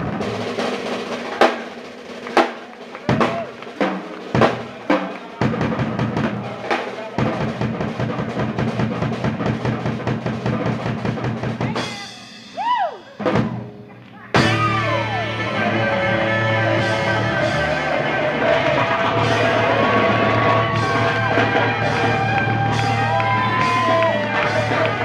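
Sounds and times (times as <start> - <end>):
drum kit and congas: 0.0 - 25.0
latin jazz band playing: 10.6 - 25.0.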